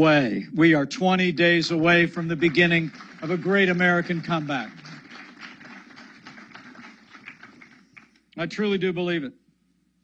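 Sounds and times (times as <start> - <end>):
audience applauding: 1.9 - 8.2.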